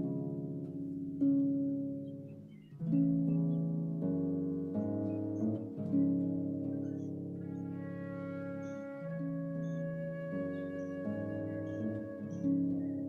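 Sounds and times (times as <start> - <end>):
soft plucked-string music: 0.0 - 13.0.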